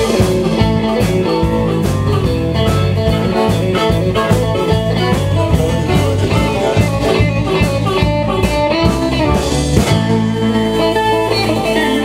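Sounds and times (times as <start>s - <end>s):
drum hits: 0.0s - 10.7s
blues band playing: 0.0s - 12.0s.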